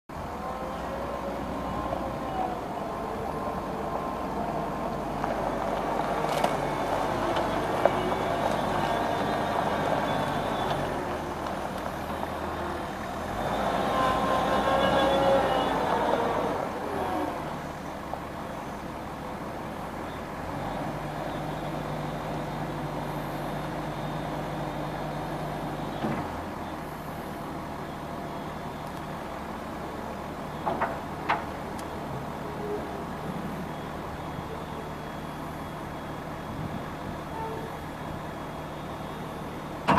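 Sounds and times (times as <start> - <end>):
wheel loader diesel engine: 0.0 - 39.9.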